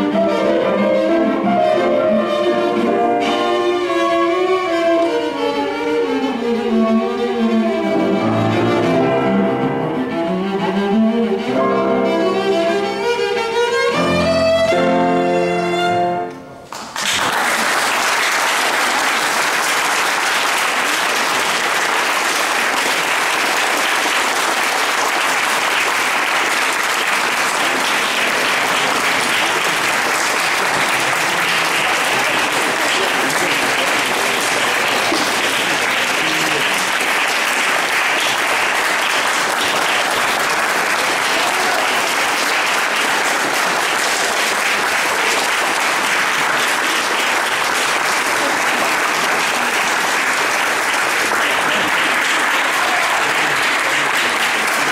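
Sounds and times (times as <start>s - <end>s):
audience applauding: 16.6s - 54.9s.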